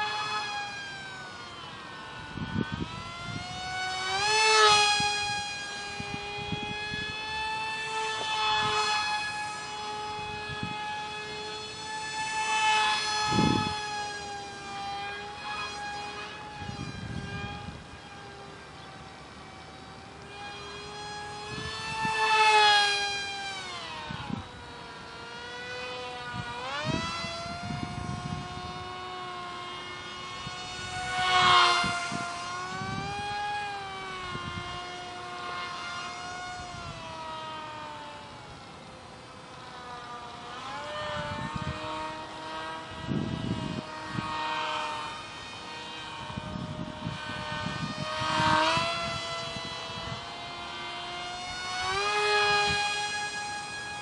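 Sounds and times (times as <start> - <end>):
high-pitched electric motor whine: 0.0 - 54.0.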